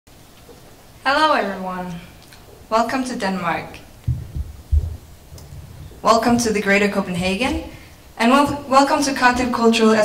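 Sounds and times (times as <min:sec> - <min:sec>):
faint low hum: 0:00.1 - 0:10.0
dull low thumps: 0:03.9 - 0:08.7.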